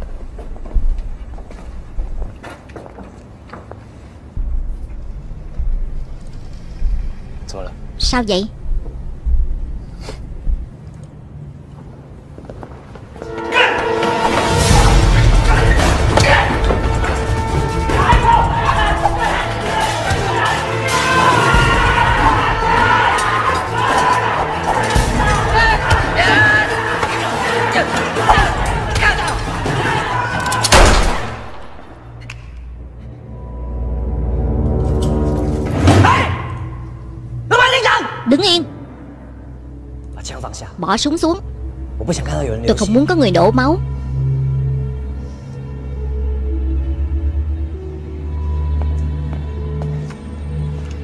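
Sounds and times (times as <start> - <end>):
action film music: 4.3 - 12.3, 13.0 - 51.0
low rumble: 4.3 - 12.3.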